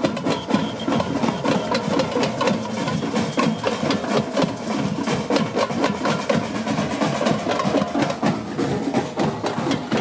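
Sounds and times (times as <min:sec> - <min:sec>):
drum band playing: 0:00.0 - 0:10.0.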